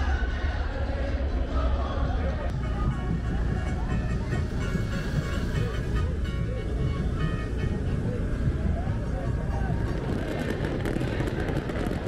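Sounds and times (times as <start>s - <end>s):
samba parade music with singing: 0.0s - 12.0s.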